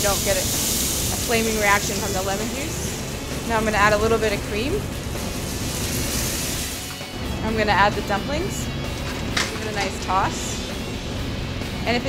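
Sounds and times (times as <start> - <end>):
cream sizzling in a pan: 0.0 - 7.2
music: 0.0 - 12.0.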